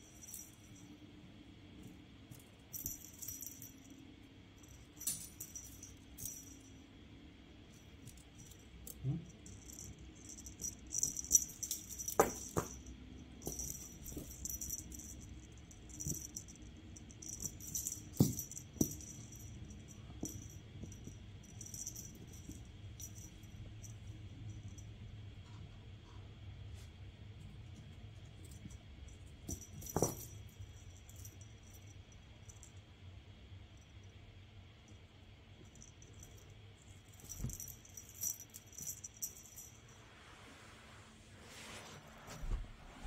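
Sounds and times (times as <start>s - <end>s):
cat toy beads jingling: 2.7s - 3.8s, 7.8s - 24.0s, 29.3s - 32.0s, 35.7s - 40.0s
cat toy rattling over carpet: 8.0s - 16.5s.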